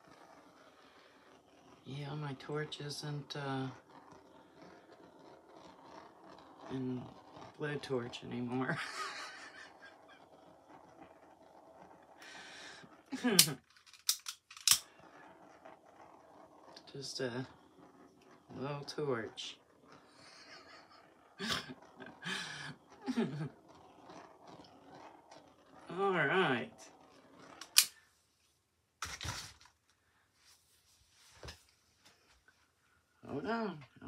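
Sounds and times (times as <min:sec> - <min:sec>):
torch flame hissing: 0:12.1 - 0:13.6, 0:18.1 - 0:25.1.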